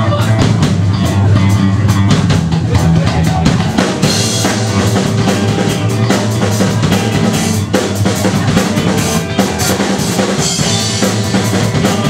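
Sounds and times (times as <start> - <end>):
drum kit steady beat: 0.0 - 12.0
electric guitar: 0.0 - 12.0.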